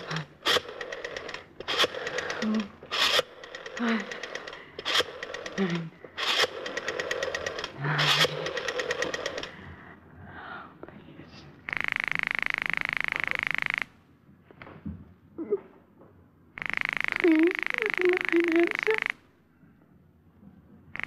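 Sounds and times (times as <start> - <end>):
rotary dial clicking: 0.0 - 9.5, 11.7 - 13.9, 16.6 - 19.2
telephone ring: 11.7 - 13.9, 16.6 - 19.2.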